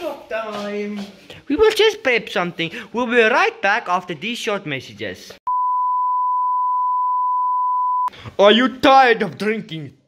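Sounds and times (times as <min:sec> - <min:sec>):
steady test tone beep: 0:05.5 - 0:08.1.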